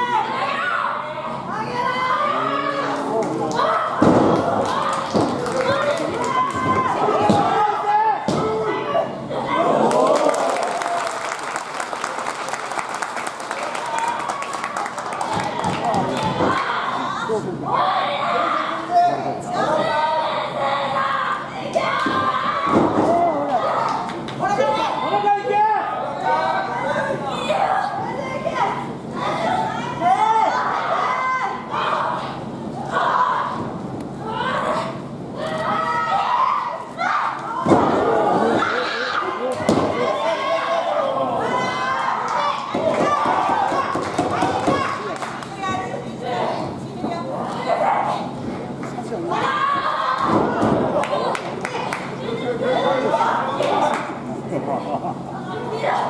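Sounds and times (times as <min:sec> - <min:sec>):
crowd voices: 0:00.0 - 0:56.0.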